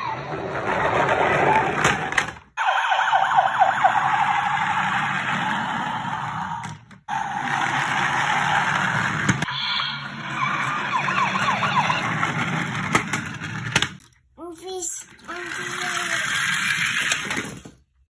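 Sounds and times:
toy siren wailing: 0:02.6 - 0:04.8, 0:09.5 - 0:12.4.

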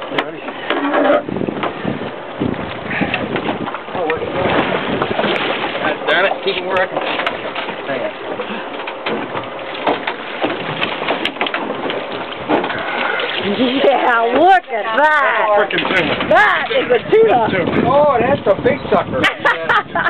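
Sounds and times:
fishing boat engine noise: 0:00.0 - 0:20.0
water: 0:00.0 - 0:20.0
wind: 0:00.0 - 0:20.0.

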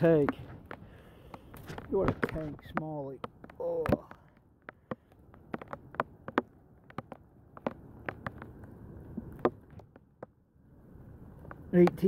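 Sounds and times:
light taps and knocks: 0:00.0 - 0:10.4, 0:11.4 - 0:12.0.

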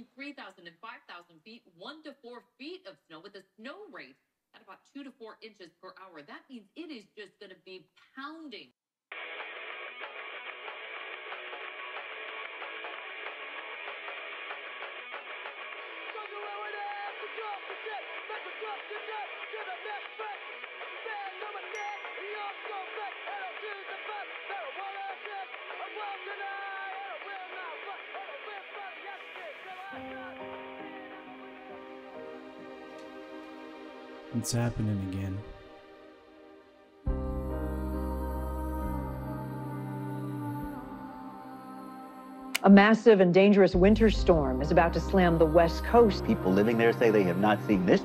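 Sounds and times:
sustained music notes: 0:30.0 - 0:42.5, 0:43.8 - 0:48.0.

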